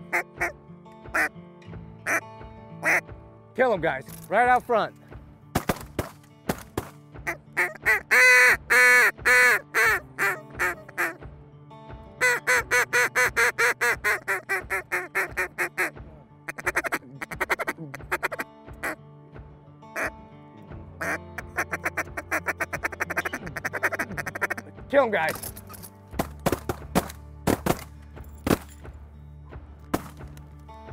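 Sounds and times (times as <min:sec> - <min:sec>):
duck quacking: 0:02.8 - 0:03.0, 0:07.2 - 0:11.2, 0:12.2 - 0:19.0, 0:21.0 - 0:24.7.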